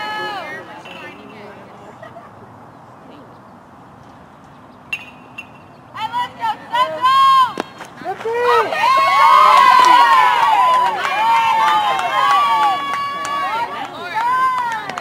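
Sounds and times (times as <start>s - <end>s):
bat hitting ball ping: 4.9s - 5.7s.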